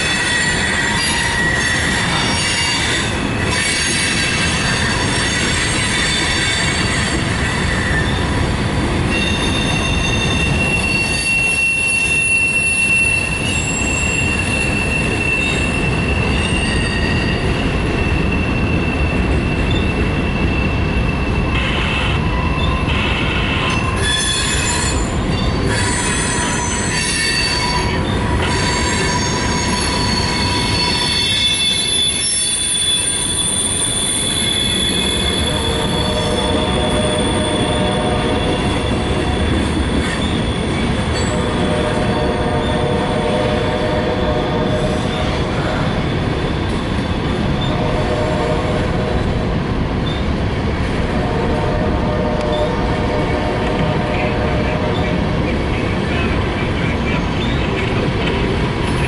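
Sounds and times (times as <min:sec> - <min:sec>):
train wheels rumbling on rail: 0:00.0 - 0:59.0
wheels squealing: 0:09.1 - 0:45.4.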